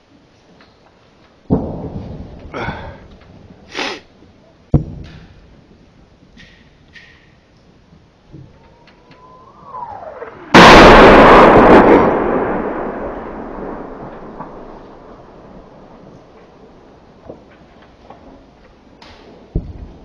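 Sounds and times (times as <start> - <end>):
loud explosion rumbling: 1.5 - 3.6, 9.1 - 17.4.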